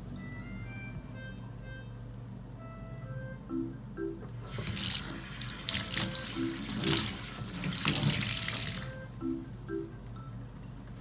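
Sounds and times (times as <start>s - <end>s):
tap water running into steel sink: 4.5s - 9.0s.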